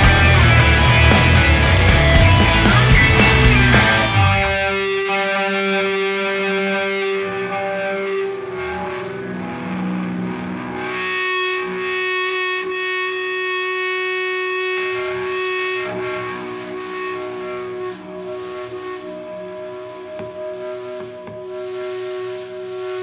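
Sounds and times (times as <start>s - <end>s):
distorted electric guitar drone: 0.0s - 23.0s.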